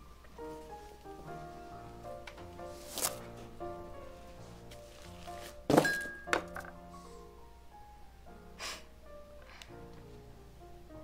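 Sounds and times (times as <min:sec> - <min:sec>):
film score music: 0:00.0 - 0:05.7
pouch thunking onto wooden table: 0:05.3 - 0:06.8.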